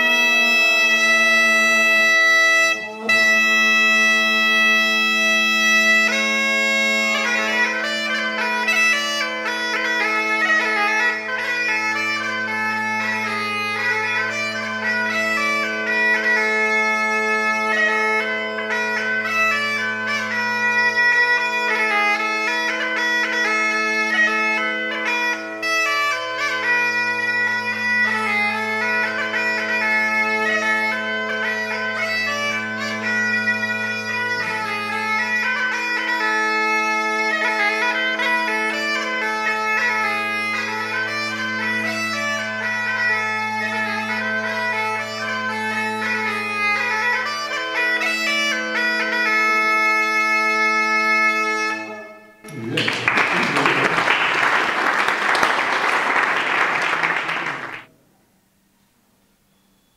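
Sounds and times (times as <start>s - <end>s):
bagpipe melody: 0.0s - 52.5s
bagpipe drone: 0.0s - 57.9s
applause: 52.5s - 57.9s.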